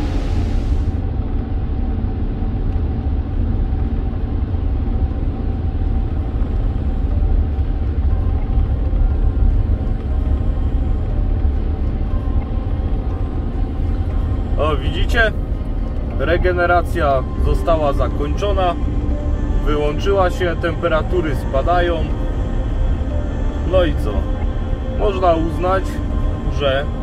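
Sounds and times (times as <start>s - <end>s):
diesel engine low rumble: 0.0s - 27.0s
road noise: 0.0s - 27.0s.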